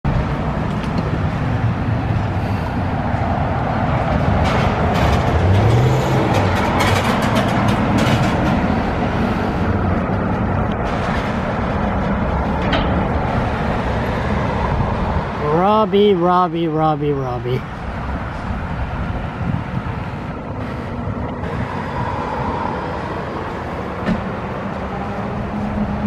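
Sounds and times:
cars and trucks passing: 0.0 - 26.0
vehicle engine: 0.1 - 26.0.

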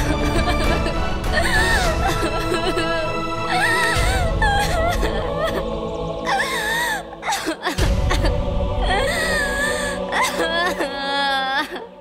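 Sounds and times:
woman crying in high wails: 0.0 - 5.7, 6.3 - 11.9
background music: 0.0 - 12.0.

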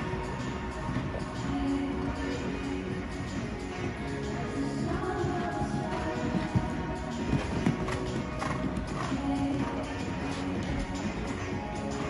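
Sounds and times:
music over sound system: 0.0 - 12.0
hooves on sand: 4.9 - 12.0.

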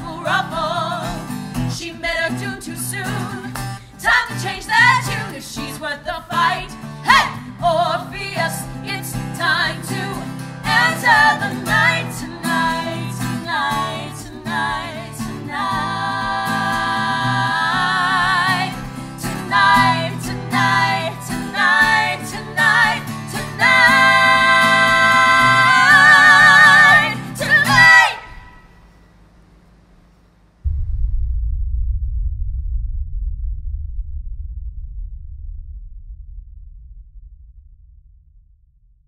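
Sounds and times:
acoustic guitar: 0.0 - 28.6
women singing in harmony: 0.0 - 28.6
low rumble: 30.6 - 39.0.

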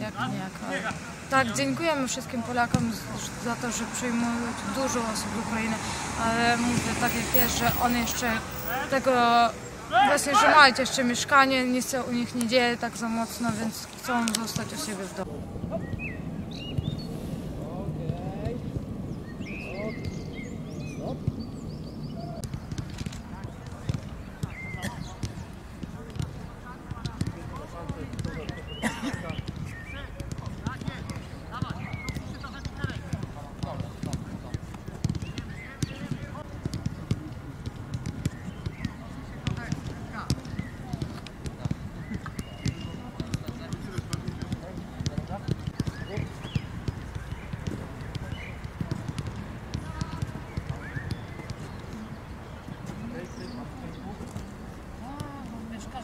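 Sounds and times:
footballs kicked on artificial turf: 19.8 - 52.2.

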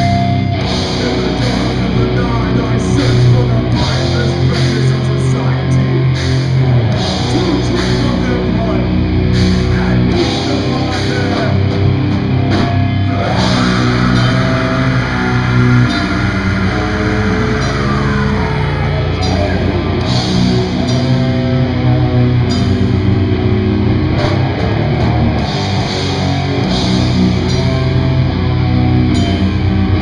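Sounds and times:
heavy metal band playing: 0.0 - 30.0.

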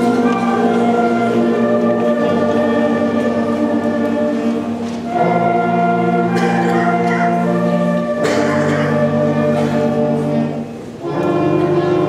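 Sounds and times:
concert band playing chords: 0.0 - 12.0.

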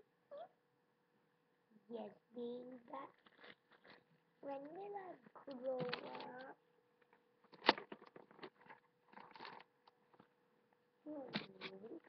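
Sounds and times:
child's wordless play-voice: 0.3 - 0.6, 1.7 - 3.4, 4.4 - 6.6, 11.0 - 12.0
dolls rustling and knocking: 2.7 - 6.5, 7.4 - 10.4.

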